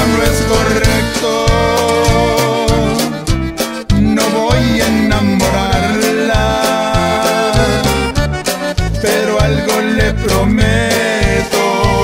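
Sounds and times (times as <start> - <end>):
bajo sexto guitar: 0.0 - 12.0
bass line with steady beat: 0.0 - 12.0
button accordion: 0.0 - 12.0.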